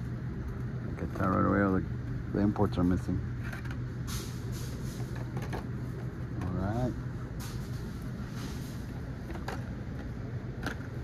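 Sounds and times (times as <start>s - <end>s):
low store hum: 0.0s - 11.0s.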